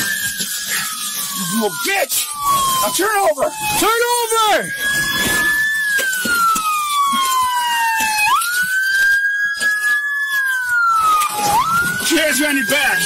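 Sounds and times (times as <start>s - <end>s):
police siren wailing: 0.0s - 13.0s.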